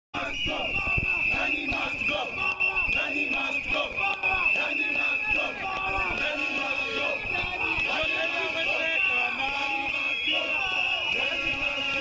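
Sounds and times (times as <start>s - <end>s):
protesters chanting and shouting: 0.1s - 12.0s
whistles blowing: 0.2s - 12.0s.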